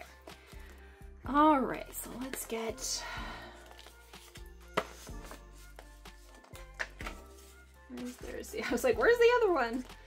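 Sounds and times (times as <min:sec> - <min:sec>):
soft background music: 0:00.0 - 0:10.0
paper rustling: 0:03.8 - 0:08.3.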